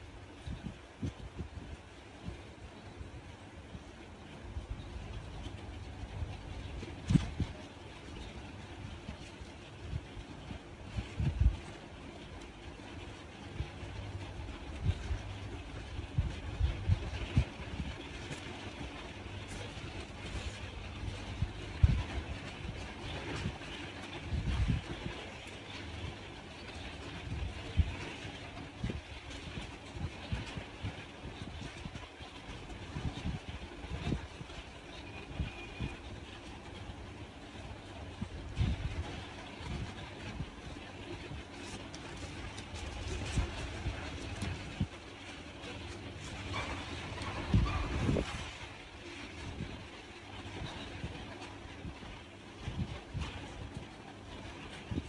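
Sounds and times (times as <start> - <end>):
low background rumble: 0.0 - 55.0.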